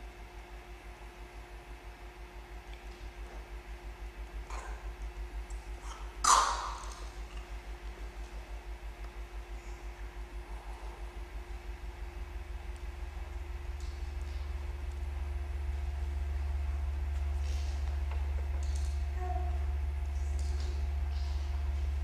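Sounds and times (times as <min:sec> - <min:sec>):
low electronic drone pulsing: 0:01.8 - 0:22.0.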